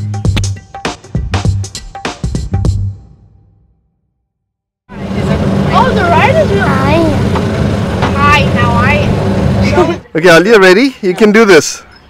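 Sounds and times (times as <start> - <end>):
vehicle engine starting and running: 4.9 - 10.1.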